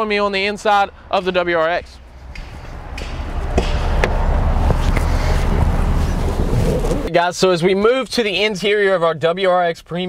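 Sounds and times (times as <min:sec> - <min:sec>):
wind rumbling on microphone: 0:01.8 - 0:07.1.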